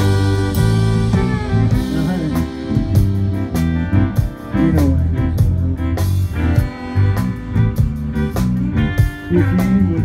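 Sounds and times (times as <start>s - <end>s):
button accordion: 0.0s - 9.6s
electric bass: 0.0s - 10.0s
electric guitar: 0.0s - 10.0s
steady drum beat: 0.0s - 10.0s.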